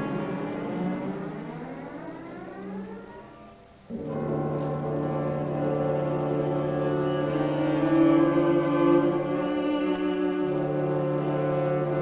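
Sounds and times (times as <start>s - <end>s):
orchestra sustained low chord: 0.0s - 12.0s.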